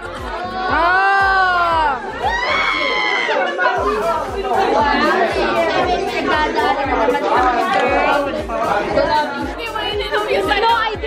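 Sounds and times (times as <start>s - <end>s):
music with bass beat: 0.0s - 3.0s, 3.8s - 11.0s
people shouting and talking: 0.0s - 11.0s.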